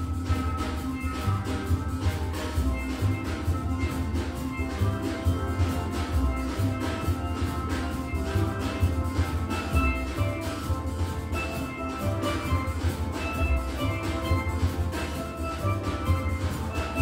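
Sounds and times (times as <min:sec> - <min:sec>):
steel band playing: 0:00.0 - 0:17.0.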